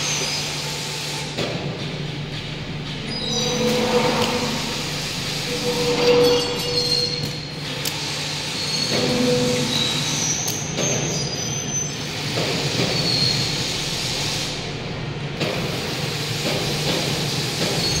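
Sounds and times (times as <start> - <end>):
machinery low hum: 0.0 - 10.4, 13.3 - 16.4
high-pitched metallic squeals: 2.8 - 12.3.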